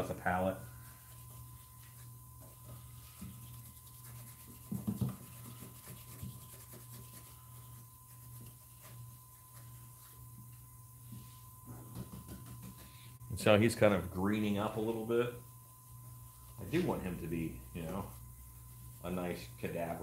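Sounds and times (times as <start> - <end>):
steady low hum: 0.0 - 20.0
thin steady whine: 0.0 - 20.0
paintbrush scrubbing: 0.7 - 11.5, 15.7 - 20.0.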